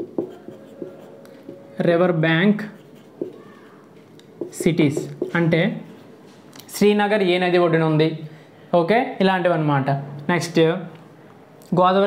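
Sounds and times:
marker writing on whiteboard: 0.0 - 6.2.

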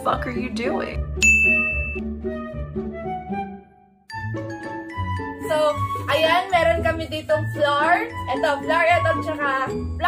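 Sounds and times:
soft background music: 0.0 - 10.0
bright ding: 1.2 - 2.0.

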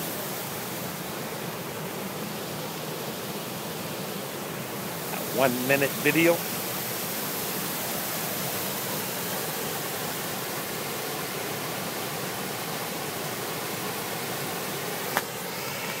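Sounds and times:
water rushing over dam: 0.0 - 16.0.

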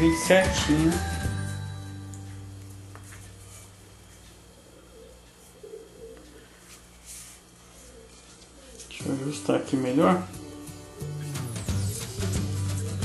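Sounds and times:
low steady hum: 0.0 - 11.6
bird cooing: 4.4 - 6.9, 7.6 - 9.0, 10.4 - 13.0.

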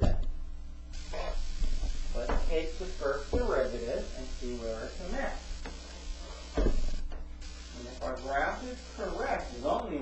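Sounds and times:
steady low hum: 0.0 - 10.0
short thump: 6.5 - 7.3.

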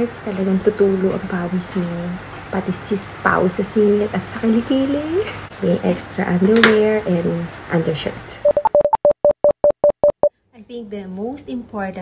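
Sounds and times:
woman speaking: 0.0 - 8.4, 10.6 - 12.0
short electronic beeps: 8.4 - 10.3.

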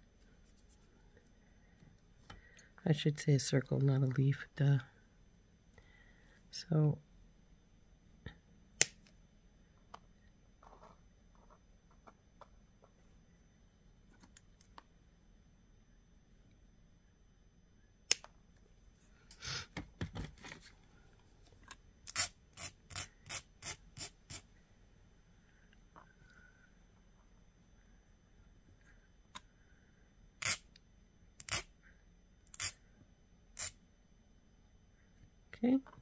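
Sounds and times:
wire cutters snipping metal: 31.4 - 31.7.

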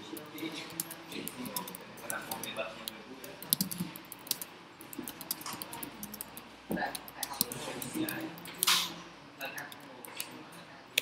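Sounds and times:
keyboard typing: 0.0 - 9.0.

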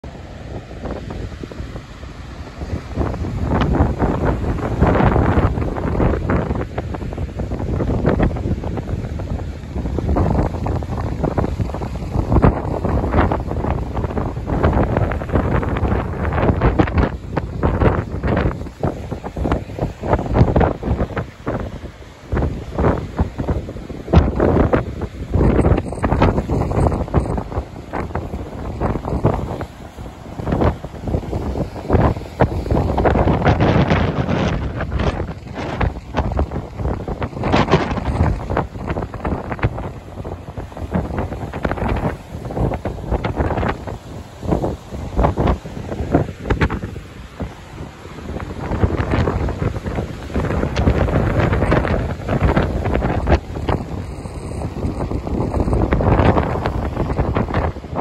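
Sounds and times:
heavy surf breaking: 0.0 - 58.0
wind buffeting microphone: 0.0 - 58.0.

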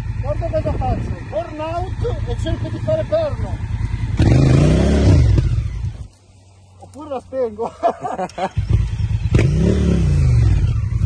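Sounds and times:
motorcycle engine revving: 0.0 - 6.8, 8.2 - 11.0.

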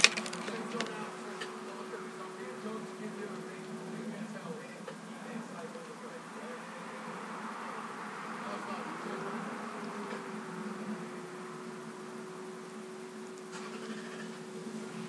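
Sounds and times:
electrical hum: 0.0 - 15.0
low buzz: 0.0 - 15.0.

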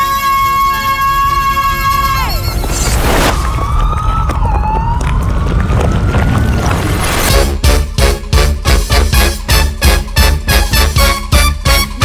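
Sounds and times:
police siren wailing: 3.0 - 7.3.

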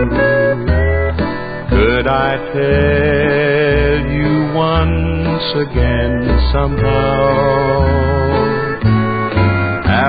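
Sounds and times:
bass note: 0.0 - 10.0
country guitar: 0.0 - 10.0.

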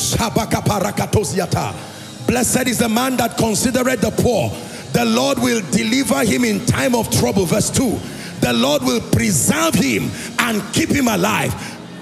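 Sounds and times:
man speaking rapidly into microphone: 0.0 - 11.8
soft background music: 0.0 - 12.0.

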